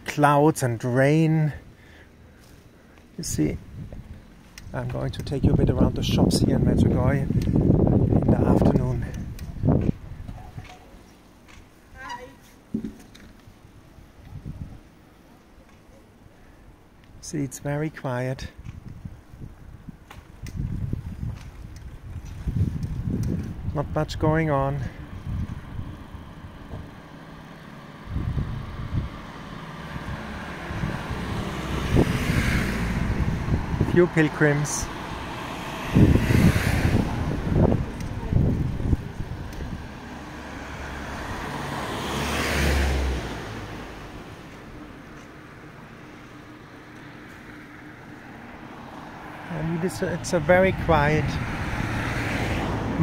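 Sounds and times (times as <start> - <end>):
quiet street ambience: 0.0 - 53.0.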